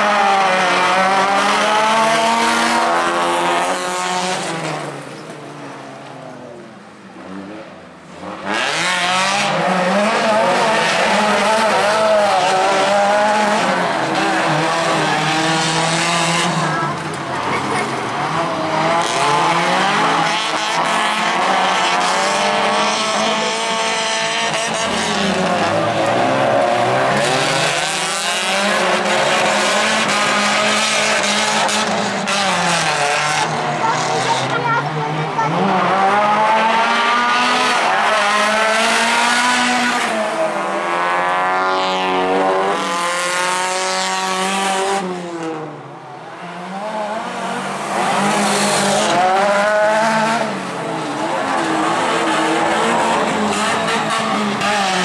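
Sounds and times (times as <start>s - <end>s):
race car engines revving hard: 0.0s - 55.0s.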